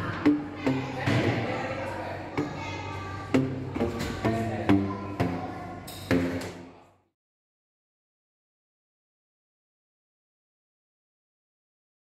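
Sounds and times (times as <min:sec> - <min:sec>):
paddle slapping tuned tubes: 0:00.0 - 0:06.7.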